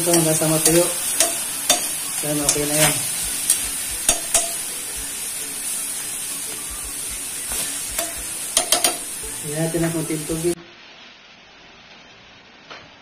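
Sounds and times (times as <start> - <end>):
chicken livers sizzling in a pan: 0.0 - 10.6
utensil clicking against pan: 8.0 - 9.0.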